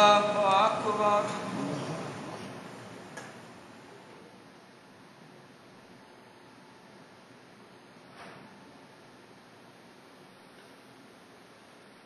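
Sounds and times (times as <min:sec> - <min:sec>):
call to prayer over loudspeakers: 0:00.0 - 0:02.3.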